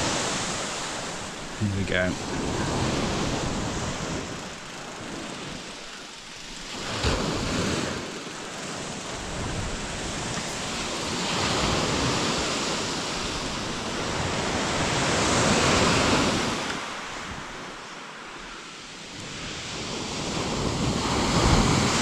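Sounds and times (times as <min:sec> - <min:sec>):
waves breaking on shingle beach: 0:00.0 - 0:17.7, 0:19.1 - 0:22.0.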